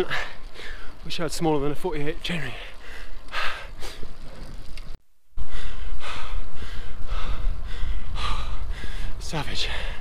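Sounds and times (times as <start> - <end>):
cyclist panting hard: 0.0 - 1.0, 2.4 - 4.4, 5.4 - 10.0
wind rumble on microphone: 5.8 - 10.0.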